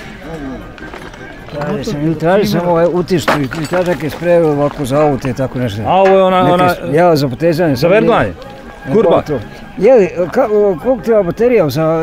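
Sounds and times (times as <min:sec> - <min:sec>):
background voices talking: 0:00.0 - 0:12.0
close conversation: 0:00.0 - 0:12.0.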